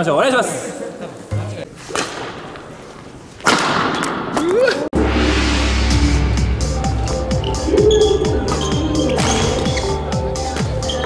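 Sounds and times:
sharp hits with rushing noise: 0:05.0 - 0:08.7.

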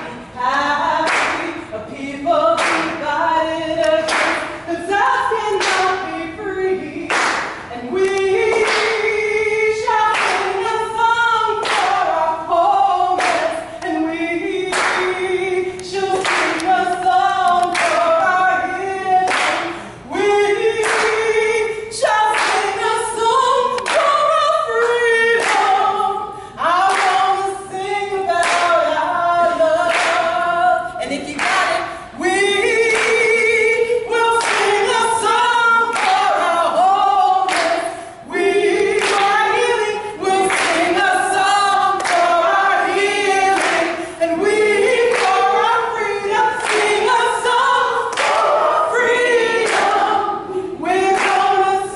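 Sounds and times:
group singing a cappella: 0:00.0 - 0:51.9
hand claps: 0:01.0 - 0:01.6, 0:02.6 - 0:03.0, 0:03.8 - 0:04.6, 0:05.5 - 0:06.0, 0:07.1 - 0:09.0, 0:10.1 - 0:10.6, 0:11.6 - 0:12.0, 0:13.2 - 0:14.0, 0:14.7 - 0:15.1, 0:15.8 - 0:16.9, 0:17.5 - 0:18.1, 0:19.2 - 0:19.9, 0:20.8 - 0:21.2, 0:22.1 - 0:22.8, 0:23.7 - 0:24.2, 0:25.4 - 0:25.8, 0:26.9 - 0:27.3, 0:28.4 - 0:28.7, 0:29.9 - 0:30.3, 0:31.4 - 0:31.8, 0:32.9 - 0:33.3, 0:34.4 - 0:35.0, 0:35.9 - 0:36.3, 0:37.5 - 0:37.9, 0:39.0 - 0:41.0, 0:42.0 - 0:42.3, 0:43.6 - 0:44.0, 0:45.1 - 0:45.6, 0:46.6 - 0:47.1, 0:48.1 - 0:48.7, 0:49.6 - 0:50.1, 0:51.1 - 0:51.6.

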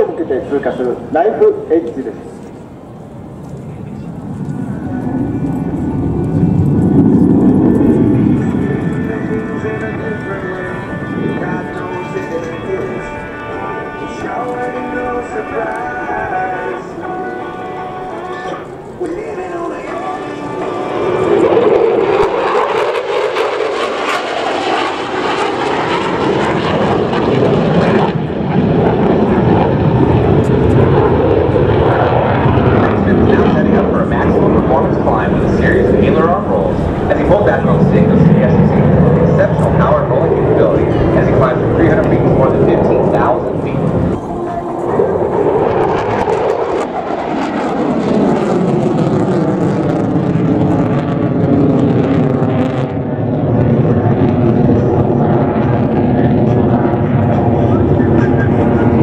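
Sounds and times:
jet engine flying past: 0:00.0 - 0:59.0.

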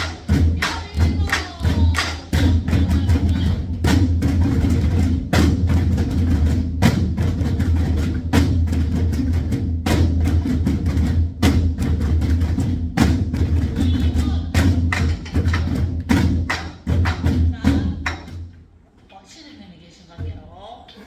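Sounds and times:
drummers striking barrel drums: 0:00.0 - 0:18.5.

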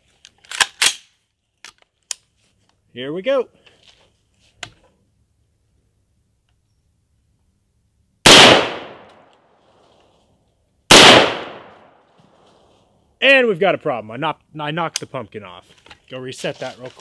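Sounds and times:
rifle shots: 0:08.2 - 0:09.3, 0:10.9 - 0:12.0.

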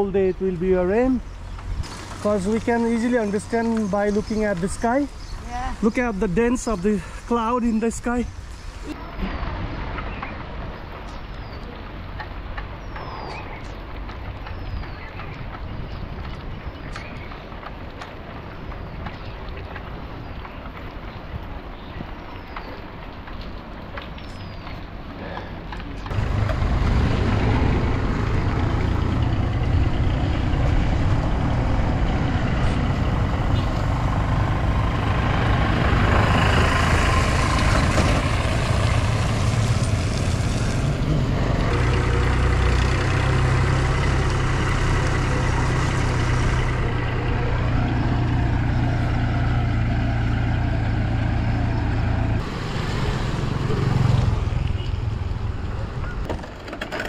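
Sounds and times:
wind buffeting microphone: 0:13.8 - 0:24.9.

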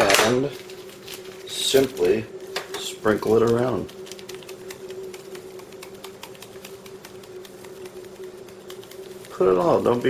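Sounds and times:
steady low hum: 0:00.0 - 0:10.0
crackling clicks of boiling beans: 0:01.8 - 0:10.0.

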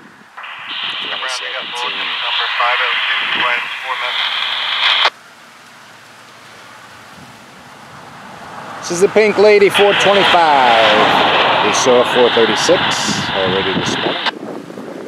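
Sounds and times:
voice over scanner radio: 0:00.4 - 0:05.1, 0:08.8 - 0:14.3
static hiss: 0:00.4 - 0:08.2, 0:08.8 - 0:14.3.

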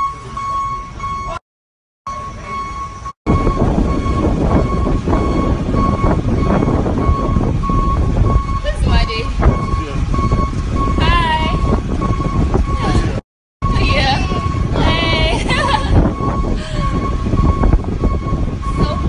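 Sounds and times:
vehicle interior rumble: 0:02.1 - 0:19.0.

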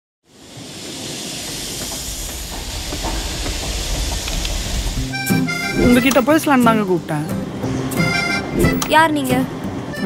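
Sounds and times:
train rumble and hiss: 0:00.2 - 0:10.0.

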